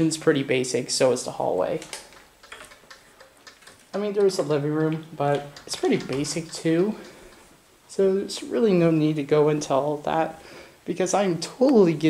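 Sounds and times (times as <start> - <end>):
faint clicks: 1.8 - 7.6.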